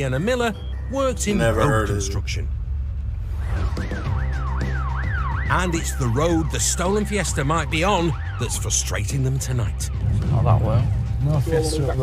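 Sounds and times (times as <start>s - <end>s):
background music with low bass: 0.0s - 12.0s
police siren yelping: 4.0s - 5.8s.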